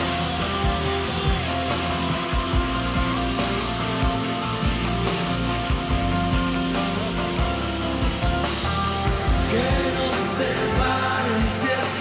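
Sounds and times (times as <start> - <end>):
live band playing pop: 0.0 - 12.0.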